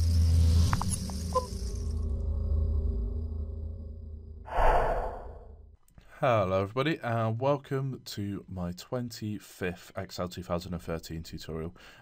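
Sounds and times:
low rumbling swell with hiss: 0:02.2 - 0:05.6.

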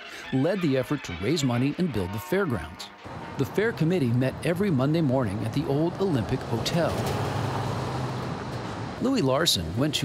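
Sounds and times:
truck driving past: 0:02.9 - 0:09.0.

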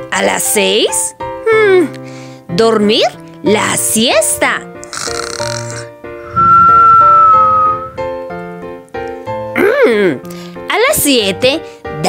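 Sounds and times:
light children's music: 0:00.0 - 0:12.0
cartoon snoring whistle: 0:04.8 - 0:08.1.

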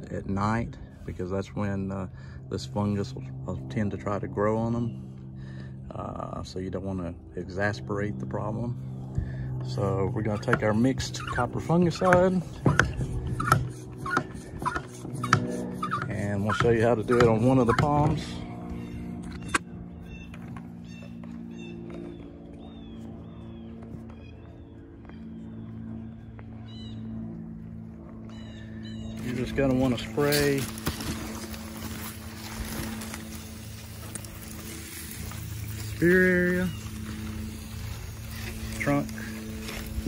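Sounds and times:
steady low hum: 0:00.0 - 0:40.0.

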